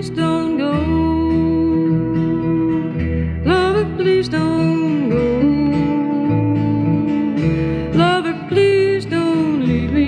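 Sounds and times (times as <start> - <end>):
acoustic guitar accompaniment: 0.0 - 10.0.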